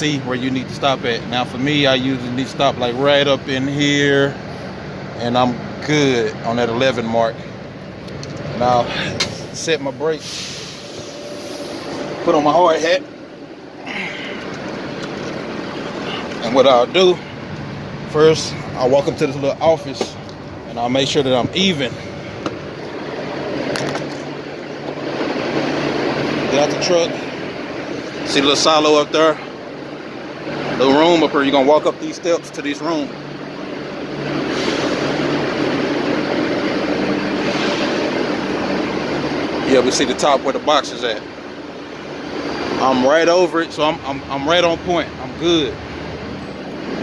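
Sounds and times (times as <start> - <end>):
diesel truck engine idling: 0.0 - 47.0
machinery drone: 7.7 - 31.5
low hum: 9.3 - 16.4
brief hiss: 10.2 - 12.1.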